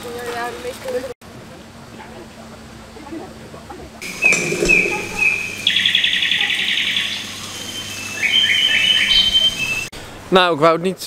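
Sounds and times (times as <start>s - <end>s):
songbird chirping and trilling: 4.0s - 9.9s.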